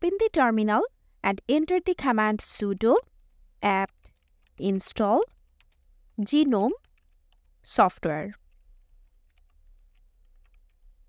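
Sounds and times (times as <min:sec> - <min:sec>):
faint keyboard typing: 0:01.7 - 0:11.0.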